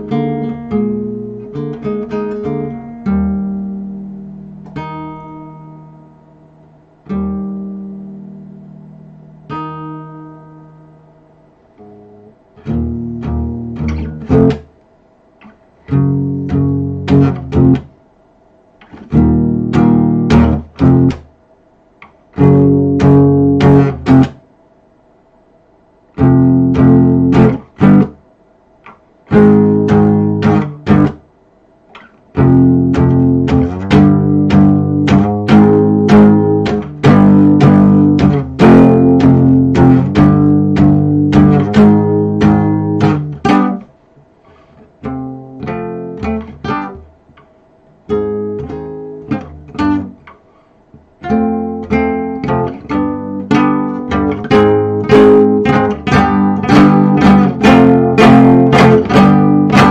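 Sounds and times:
acoustic guitar strummed and plucked: 0.0s - 6.3s, 7.0s - 11.1s, 11.8s - 14.7s, 15.8s - 17.9s, 18.8s - 21.3s, 22.0s - 24.4s, 26.2s - 28.2s, 28.8s - 31.2s, 32.0s - 43.9s, 44.5s - 47.1s, 48.1s - 59.9s.

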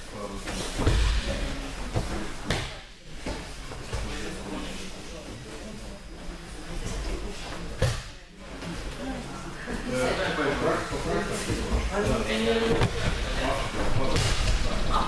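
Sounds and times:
murmur of training hall: 0.0s - 15.0s.

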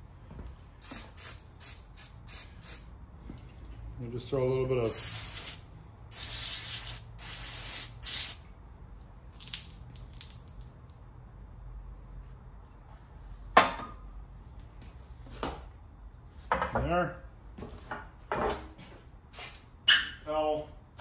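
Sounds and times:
aerosol spray hissing: 0.8s - 2.9s, 4.9s - 8.4s.

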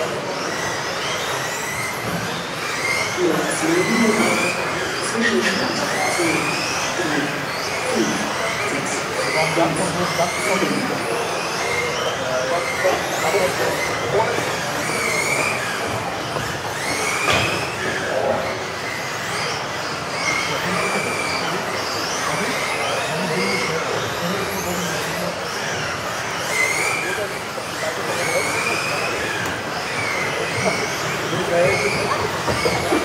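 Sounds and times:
rc car motors whining: 0.0s - 33.0s.

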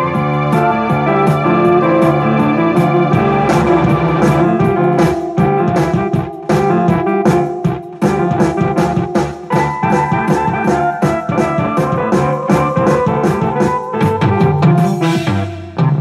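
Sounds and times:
electronic keyboard piano voice: 0.0s - 15.8s
drum accompaniment: 0.0s - 16.0s.

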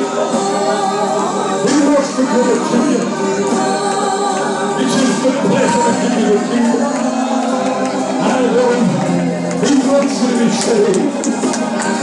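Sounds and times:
congregation singing gospel: 0.0s - 12.0s.

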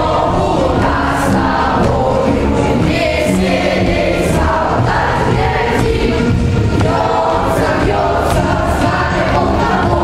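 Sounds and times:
children singing in chorus: 0.0s - 10.0s.

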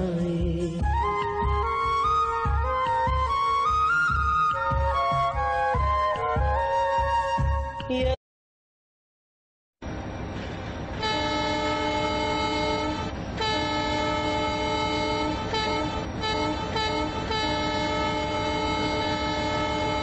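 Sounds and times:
train rumble: 9.8s - 20.0s
train horn blasts: 11.0s - 20.0s.

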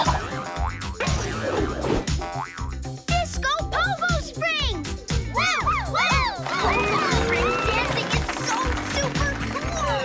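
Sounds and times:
upbeat cartoon dance music: 0.0s - 10.0s.

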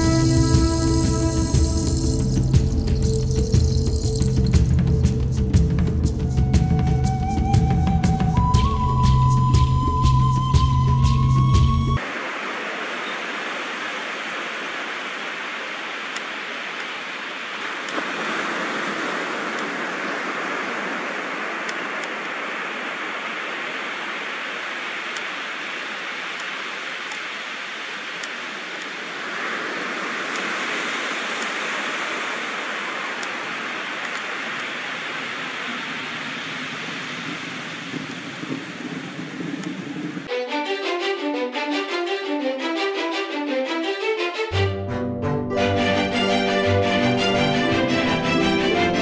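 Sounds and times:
steady rushing hiss: 0.0s - 44.6s.

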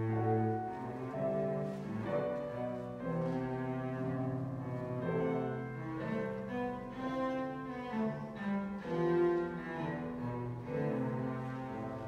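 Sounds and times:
cello bowed low notes: 0.0s - 12.0s.

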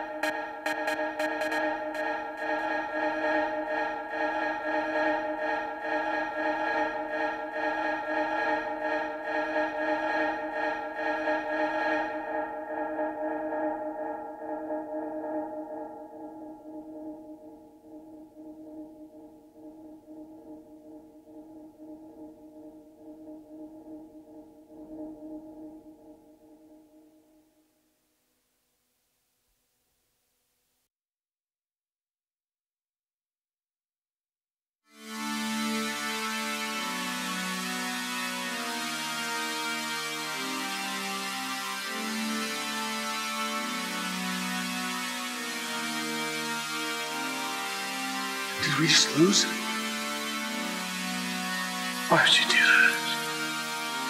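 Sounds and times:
techno beat: 0.0s - 5.7s
held synth chord: 0.0s - 19.4s.

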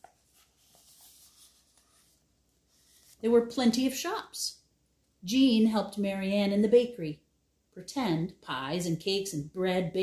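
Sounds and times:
paper book rustling: 0.0s - 3.3s.

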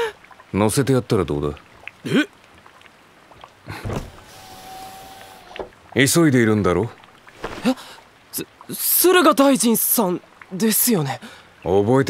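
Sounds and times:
rain-like hiss: 0.0s - 12.0s.

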